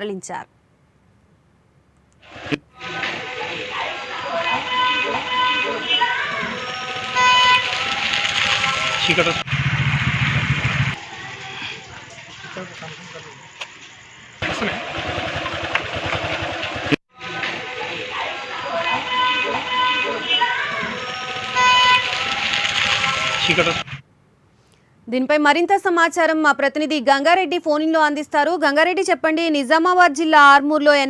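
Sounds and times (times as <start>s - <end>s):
street noise: 0.0s - 24.1s
noisy rush: 3.2s - 11.6s
vehicle horn: 4.5s - 9.4s, 18.9s - 23.9s.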